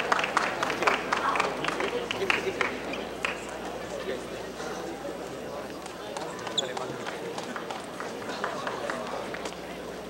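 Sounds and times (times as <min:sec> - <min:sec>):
voices in a hall: 0:00.0 - 0:10.0
shoe squeak: 0:06.5 - 0:06.9.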